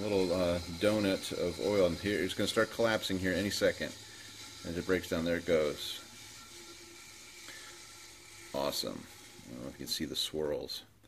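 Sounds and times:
centrifuge bowl whirring down: 0.0s - 10.9s.

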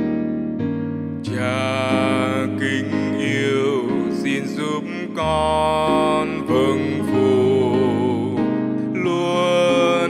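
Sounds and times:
piano accompaniment: 0.0s - 10.0s
solo singer singing: 1.2s - 10.0s.

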